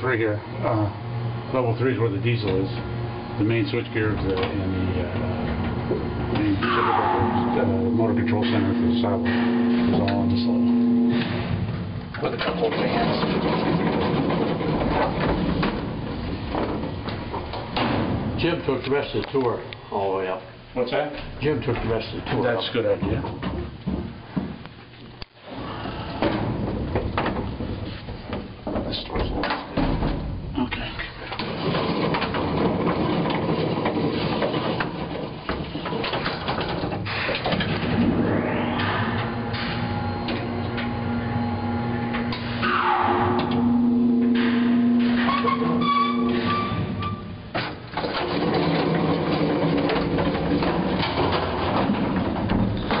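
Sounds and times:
elevator mechanical hum: 0.0s - 53.0s
falling pitch glide: 6.6s - 11.2s, 37.8s - 45.6s
mechanical clanks: 42.1s - 53.0s.

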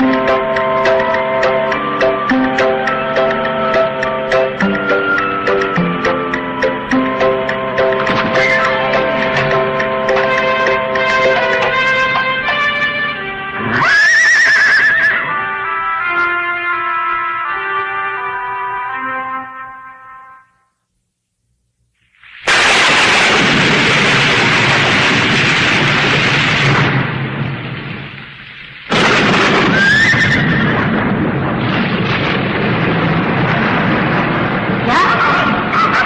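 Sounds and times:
descending cartoon melody: 0.0s - 20.5s
loud noisy crash effect: 8.0s - 12.4s, 22.2s - 36.0s.

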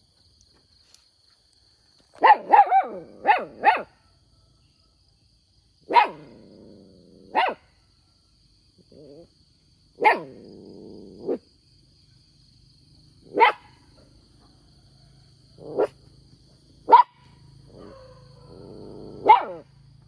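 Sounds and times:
dog barking: 2.2s - 4.0s, 5.9s - 6.5s, 7.2s - 7.7s, 10.0s - 10.6s, 13.2s - 13.8s, 15.6s - 16.0s, 16.9s - 19.7s.

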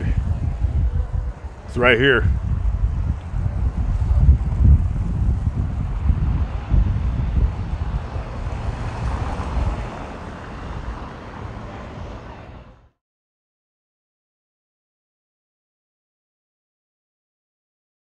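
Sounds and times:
faint street ambience: 0.0s - 13.0s
wind buffeting microphone: 0.0s - 13.0s.

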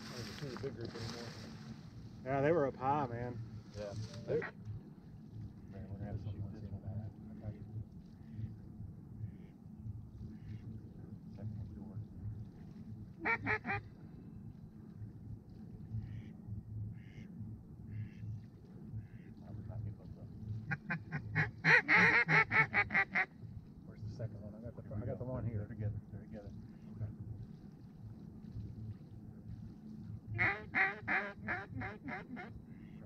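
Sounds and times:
geese clucking: 13.2s - 13.9s, 17.0s - 17.3s, 20.6s - 23.4s, 30.4s - 33.0s
geese honking: 13.2s - 13.9s, 16.0s - 19.6s, 20.6s - 23.4s, 30.4s - 33.0s.

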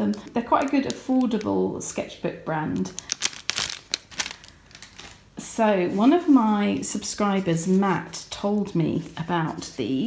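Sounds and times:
cellophane crinkling: 0.0s - 1.6s, 2.7s - 6.9s.

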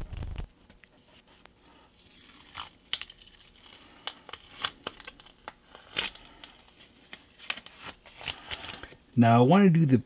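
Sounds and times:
masking tape crinkling: 1.4s - 9.0s.

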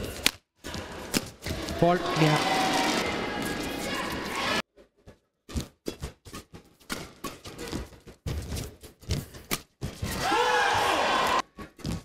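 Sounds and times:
footwork on court: 0.0s - 12.0s
crowd shouting and cheering: 1.5s - 4.6s, 10.1s - 11.4s
racket hitting shuttlecock: 5.5s - 10.2s.

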